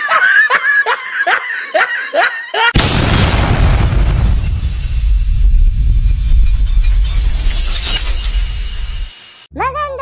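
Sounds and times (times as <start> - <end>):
woman laughing: 0.0 - 2.8.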